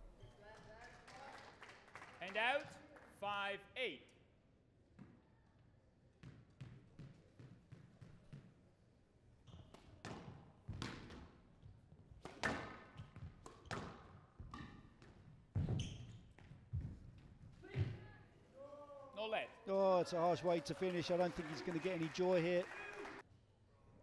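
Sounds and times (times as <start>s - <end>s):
squash ball hits: 12.2s - 14.8s.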